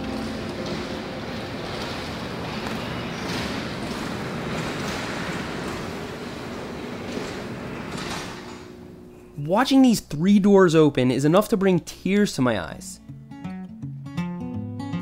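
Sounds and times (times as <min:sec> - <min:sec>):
garage door openers running: 0:00.0 - 0:11.8.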